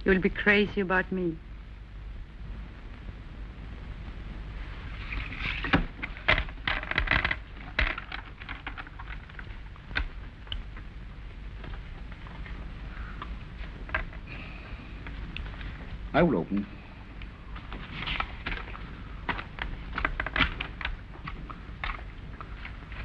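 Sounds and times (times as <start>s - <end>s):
low steady hum: 0.0s - 23.0s.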